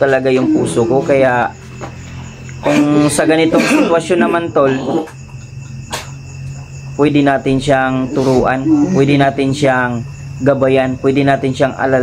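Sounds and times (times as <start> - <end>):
crickets trilling: 0.0 - 12.0
low constant hum: 0.0 - 12.0.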